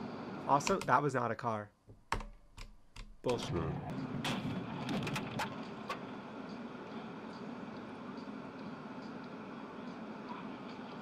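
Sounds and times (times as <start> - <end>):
car road and engine rumble: 3.8 - 11.0.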